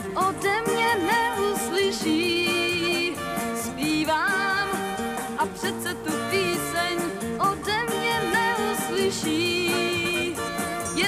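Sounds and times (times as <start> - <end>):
acoustic guitar: 0.0 - 11.0
big band held chords: 0.0 - 11.0.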